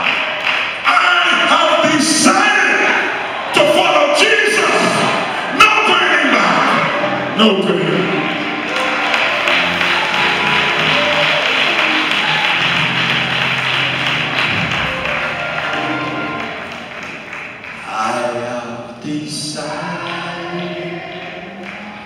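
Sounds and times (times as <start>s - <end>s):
congregation clapping: 0.0s - 22.0s
church music with held chords: 3.5s - 22.0s.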